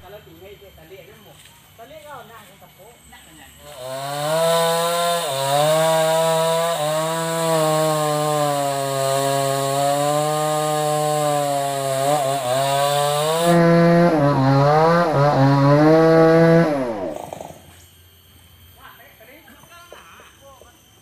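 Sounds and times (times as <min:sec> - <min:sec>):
chainsaw cutting wood: 0:03.6 - 0:17.9.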